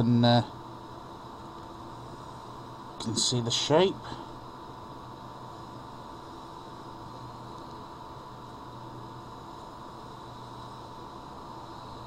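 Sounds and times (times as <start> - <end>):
faint steady tones: 0.0 - 12.0
steady background hiss: 0.0 - 12.0.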